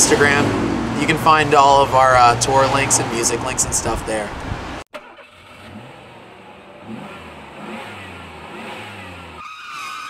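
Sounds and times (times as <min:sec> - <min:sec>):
vehicle engine revving: 0:00.0 - 0:03.5, 0:04.3 - 0:09.4.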